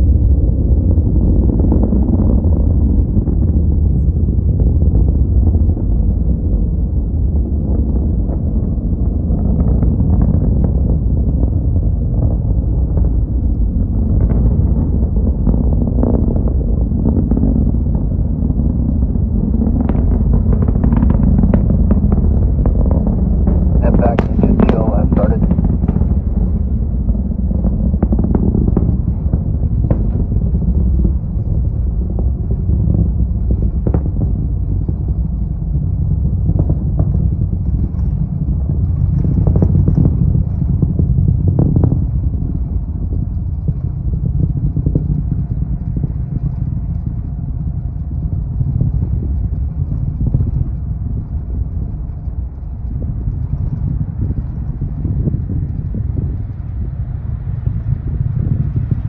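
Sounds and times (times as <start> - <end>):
rocket engines rumbling: 0.0 - 59.0.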